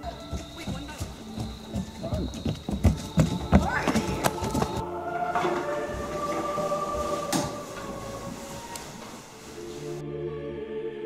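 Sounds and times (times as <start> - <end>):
running footsteps on wooden deck: 0.0 - 9.5.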